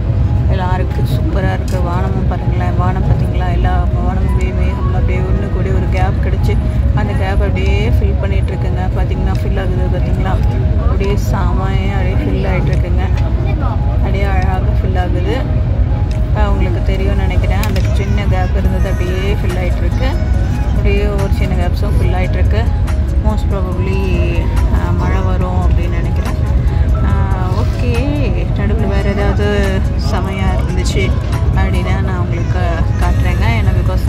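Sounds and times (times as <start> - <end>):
music: 0.0 - 34.0
voices: 0.0 - 34.0.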